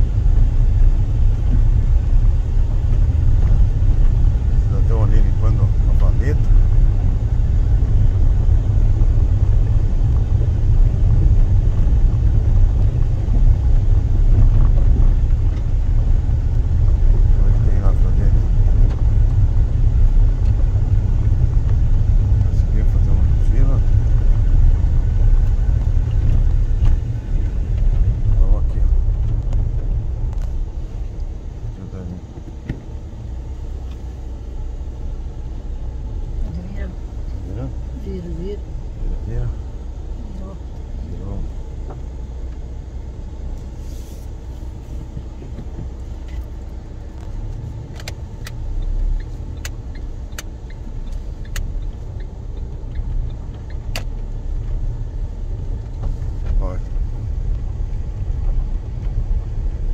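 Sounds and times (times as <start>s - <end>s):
car engine and tyres on gravel: 0.0s - 59.9s.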